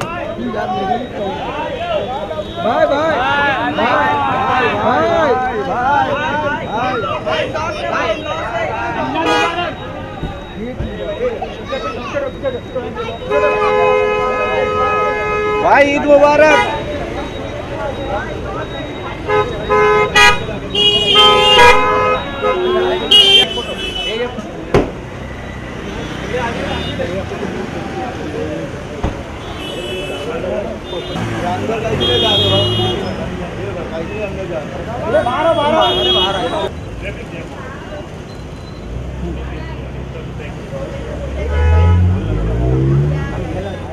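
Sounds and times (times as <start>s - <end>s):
street traffic: 0.0s - 43.9s
car horn honking: 9.0s - 10.8s, 13.1s - 17.0s, 19.1s - 24.4s, 29.3s - 33.2s, 35.1s - 36.7s, 41.3s - 43.1s
vehicle engine rumble: 36.7s - 43.9s.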